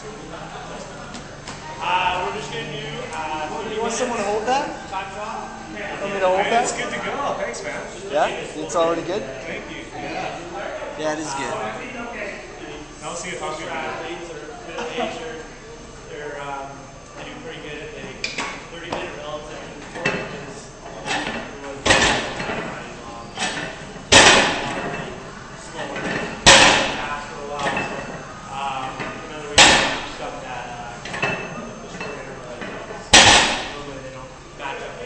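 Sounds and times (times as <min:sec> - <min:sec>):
barbell thudding on floor: 0:23.4 - 0:24.9, 0:26.1 - 0:27.9, 0:29.6 - 0:30.2, 0:33.1 - 0:33.8.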